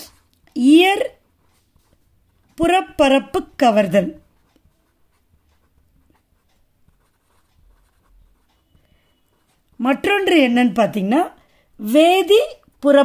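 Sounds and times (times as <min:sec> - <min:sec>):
pen writing on paper: 0:02.7 - 0:10.4.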